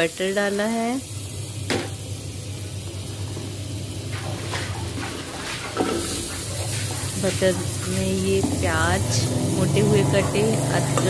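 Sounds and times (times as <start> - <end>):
butter sizzling in a pan: 0.0 - 11.0
steady low hum: 0.0 - 11.0.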